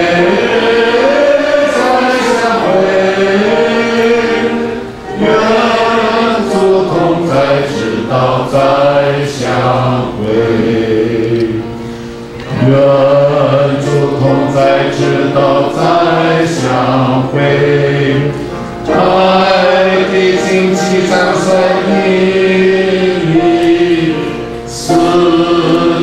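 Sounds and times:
choir singing a hymn: 0.0s - 26.0s.

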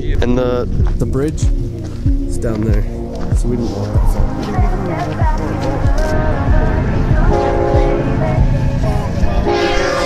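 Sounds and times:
train horn blasts: 7.3s - 8.2s, 9.4s - 10.0s.

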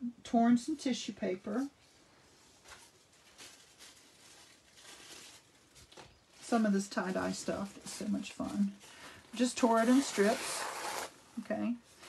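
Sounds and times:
tissue paper rustling: 1.4s - 11.1s.

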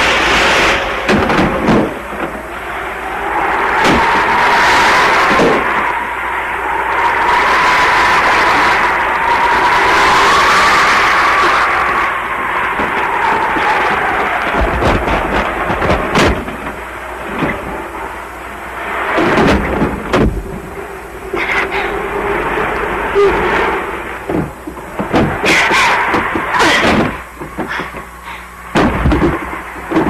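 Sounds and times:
wind howling and whistling: 0.0s - 30.0s.

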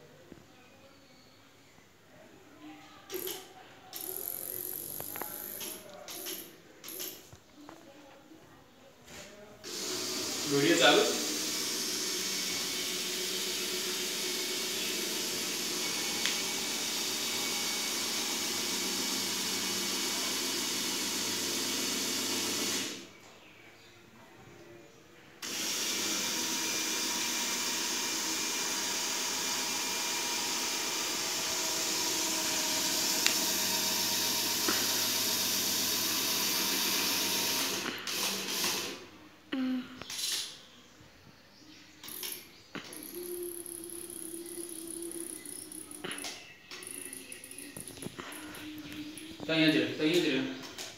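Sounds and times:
small motors whirring: 3.1s - 7.2s, 9.7s - 23.0s, 25.4s - 39.0s, 42.0s - 50.3s.

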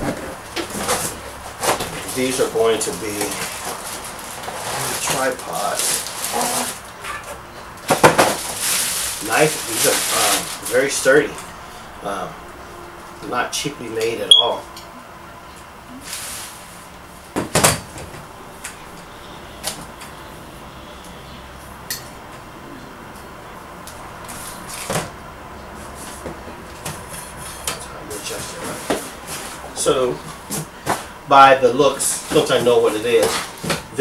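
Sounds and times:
packaging rustling and scraping: 0.0s - 11.4s.

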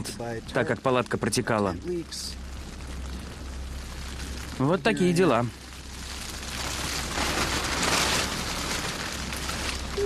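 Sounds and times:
rain on a tent: 0.0s - 10.0s.

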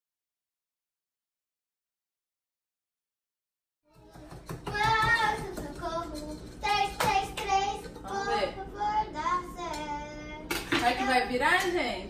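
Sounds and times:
girl singing wordlessly: 3.9s - 10.5s.

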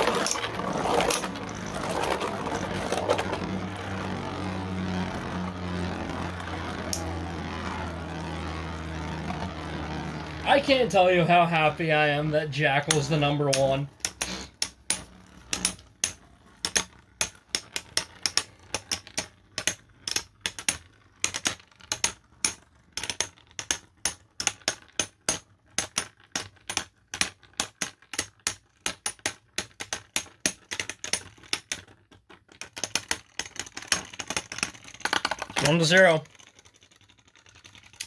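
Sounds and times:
plastic spinning tops clashing: 0.0s - 38.0s.

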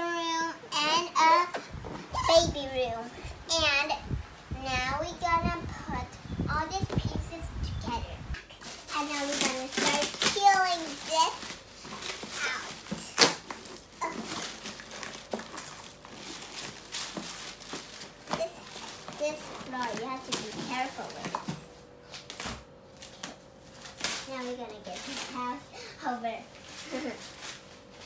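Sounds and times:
girl's wordless voice: 0.0s - 8.3s, 8.9s - 11.5s, 18.3s - 21.6s, 24.3s - 27.2s
packing wrap rustling and crinkling: 8.5s - 28.0s.

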